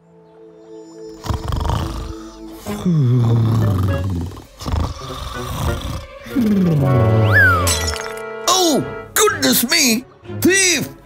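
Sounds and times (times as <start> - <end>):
soft background music: 0.0 - 11.0
cartoon snoring: 1.1 - 7.5.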